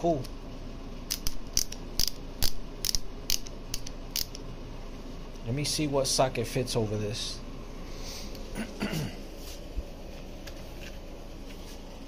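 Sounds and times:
ratchet pawl clicks: 1.1 - 4.4.

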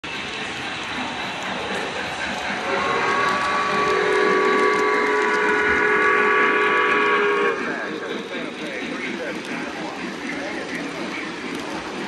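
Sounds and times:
model train running on track: 0.0 - 12.0
chime steam whistle: 2.7 - 7.8.

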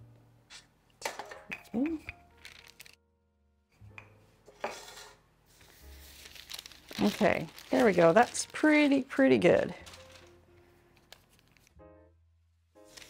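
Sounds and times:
parchment paper crinkling: 2.3 - 3.0, 5.5 - 11.8.

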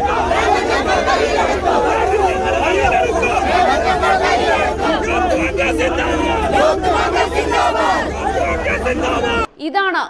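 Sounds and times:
crowd of men shouting: 0.0 - 9.5.

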